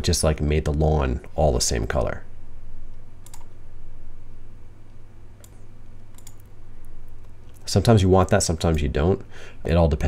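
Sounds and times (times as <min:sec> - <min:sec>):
low electrical hum: 0:00.0 - 0:10.0
computer mouse clicks: 0:03.2 - 0:03.6, 0:05.4 - 0:07.6.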